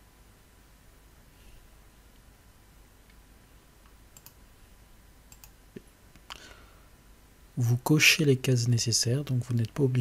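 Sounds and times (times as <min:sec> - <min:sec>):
computer mouse clicks: 0:03.8 - 0:04.4, 0:05.3 - 0:06.4.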